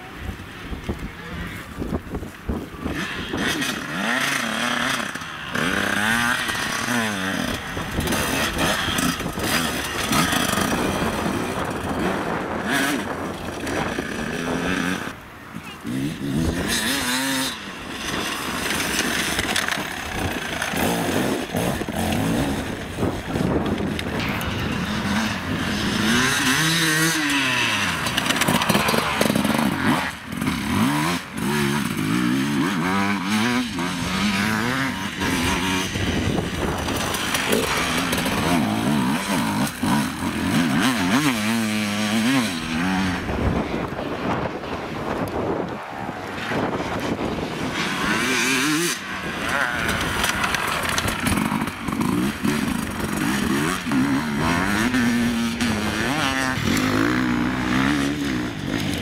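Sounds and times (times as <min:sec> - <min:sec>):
dirt bike engines revving: 0:00.0 - 0:59.0.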